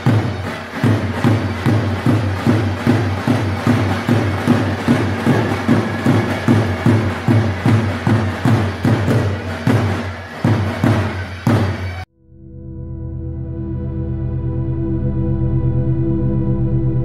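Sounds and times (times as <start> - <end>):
folk dance music: 0.0 - 12.1.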